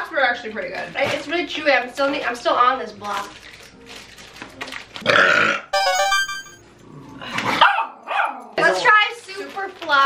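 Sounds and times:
small dog barking: 0:07.6 - 0:08.6.

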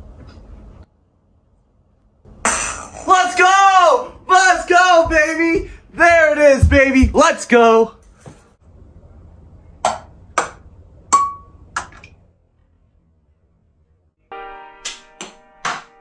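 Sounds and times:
music with held chords: 0:14.2 - 0:16.0.

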